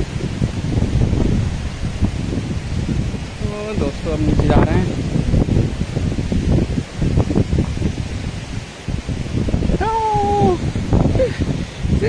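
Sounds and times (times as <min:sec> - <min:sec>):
wind buffeting microphone: 0:00.0 - 0:12.0
high voice calling out: 0:09.7 - 0:10.7.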